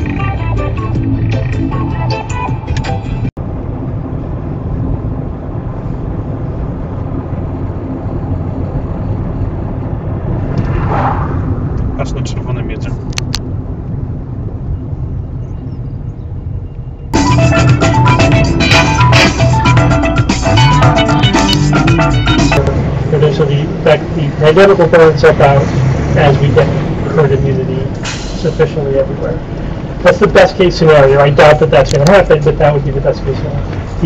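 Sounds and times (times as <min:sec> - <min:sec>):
vehicle engine and road rumble: 0:00.0 - 0:34.0.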